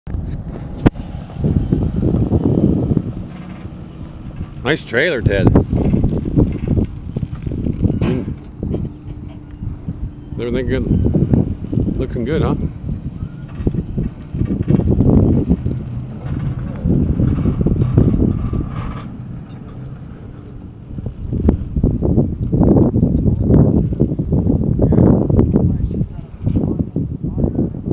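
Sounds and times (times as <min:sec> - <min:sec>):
truck driving past: 0:00.1 - 0:23.0
wind buffeting microphone: 0:00.1 - 0:27.9
tyres rolling: 0:00.2 - 0:22.2.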